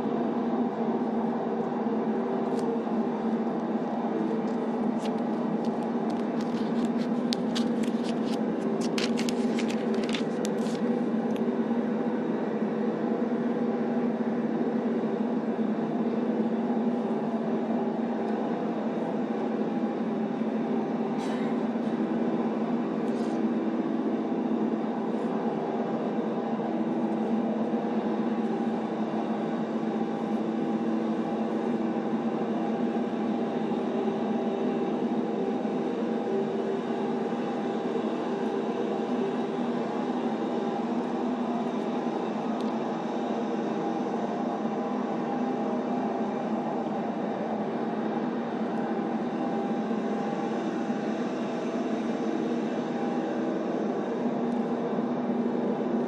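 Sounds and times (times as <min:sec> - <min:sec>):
steady rumble of noise: 0:00.0 - 0:56.0.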